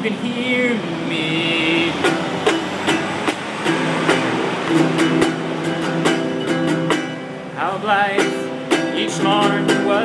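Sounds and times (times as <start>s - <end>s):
classical guitar strummed: 0.0s - 10.0s.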